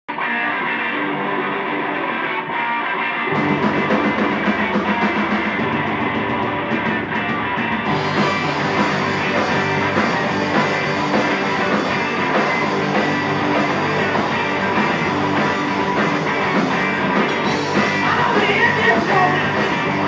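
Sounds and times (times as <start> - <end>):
electric guitar: 0.1 - 20.0
live rock band playing: 0.1 - 20.0.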